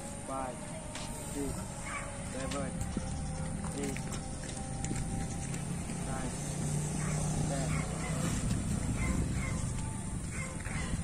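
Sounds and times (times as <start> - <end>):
motorcycle passing: 3.0 - 11.0.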